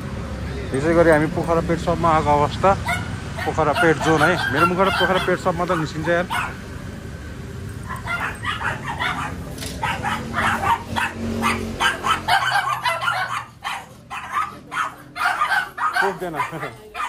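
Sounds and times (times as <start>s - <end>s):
dogs barking and yipping: 1.1s - 17.0s.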